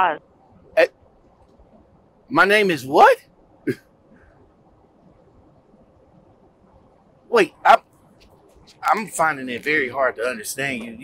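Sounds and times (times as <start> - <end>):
man speaking over telephone: 2.3 - 3.2, 7.3 - 7.8, 8.8 - 11.0.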